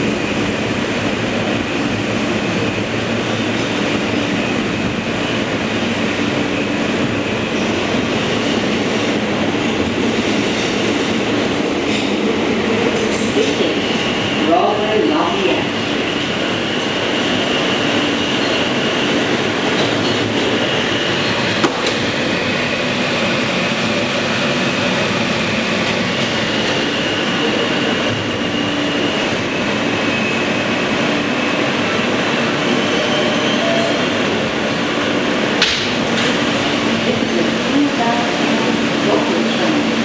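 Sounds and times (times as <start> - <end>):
wheels rumbling on rail: 0.0 - 40.0.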